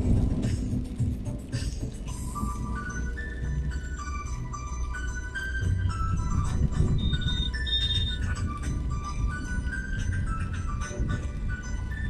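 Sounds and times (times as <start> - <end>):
steady low rumble: 0.0 - 12.0
melody of high held notes: 2.0 - 12.0.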